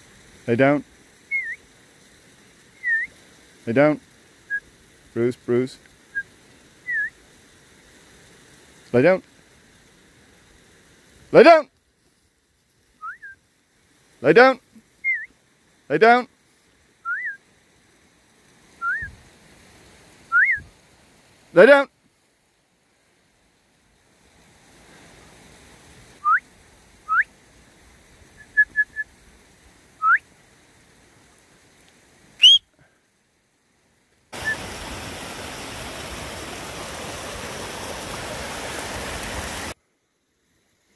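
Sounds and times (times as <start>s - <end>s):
whistle command: 1.3s - 1.6s, 2.8s - 3.1s, 6.9s - 7.1s, 13.0s - 13.4s, 15.0s - 15.3s, 17.0s - 17.4s, 18.8s - 19.2s, 20.3s - 20.7s, 26.2s - 26.4s, 27.1s - 27.3s, 28.4s - 29.1s, 30.0s - 30.2s, 32.4s - 32.7s
brook rushing: 34.4s - 39.8s.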